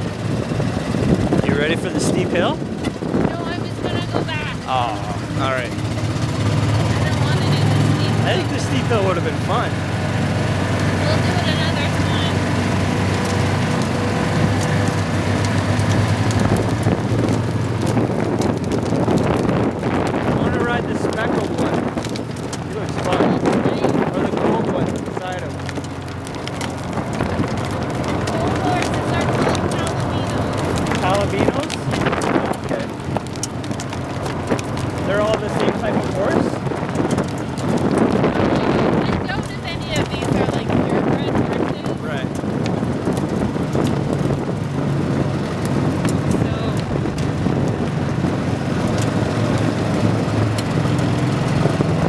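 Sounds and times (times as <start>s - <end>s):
tyres on gravel: 0.0s - 52.0s
vehicle engine running: 0.0s - 52.0s
wind noise on microphone: 0.0s - 52.0s.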